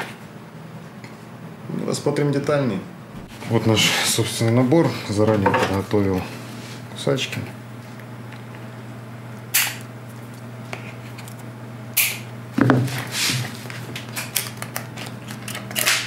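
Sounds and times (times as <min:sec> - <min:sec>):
cutters snipping: 0:09.6 - 0:09.8.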